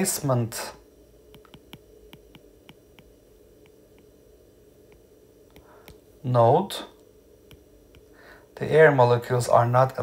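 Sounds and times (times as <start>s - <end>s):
faint steady hum: 0.0s - 10.0s
stylus tapping on tablet screen: 1.3s - 4.2s, 4.9s - 6.0s, 7.4s - 8.1s.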